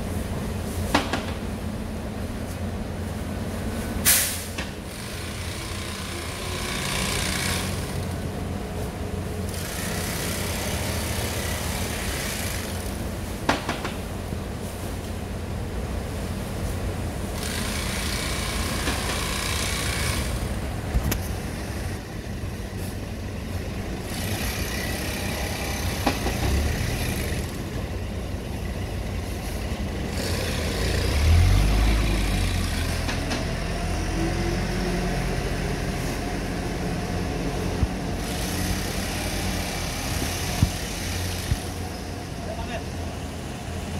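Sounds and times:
sharp knocks: 13.4 - 14.0.

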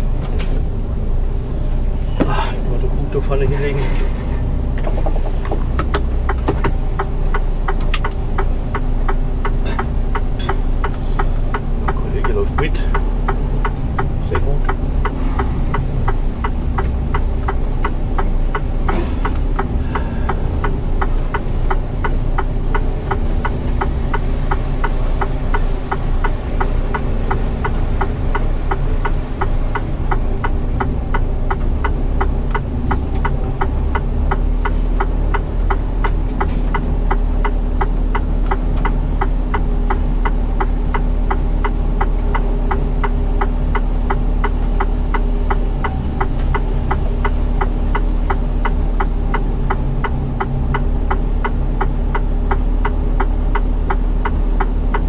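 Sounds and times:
diesel truck engine running: 0.0 - 55.0
rapid ticking in cab: 0.0 - 55.0.

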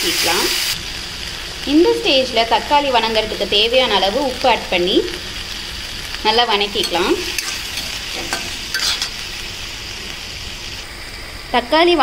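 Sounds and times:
vegetables sizzling in oil: 0.0 - 12.0
steel spatula scraping pan: 6.8 - 9.3.

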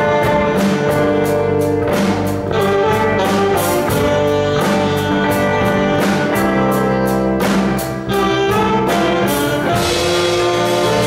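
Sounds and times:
drum and cymbal hits: 0.0 - 11.0
live jazz band: 0.0 - 11.0
saxophones holding long note: 2.4 - 7.4, 8.0 - 11.0.

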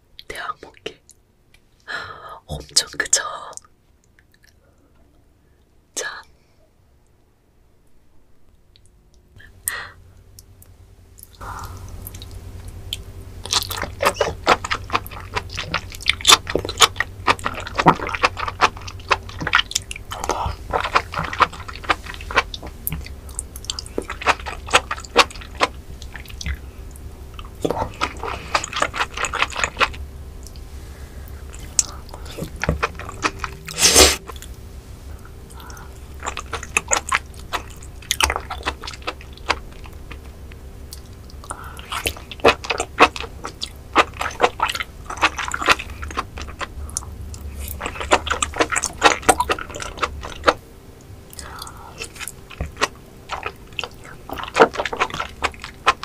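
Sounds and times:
biting and chewing: 11.2 - 56.0
slurping off a spoon: 31.6 - 34.5.

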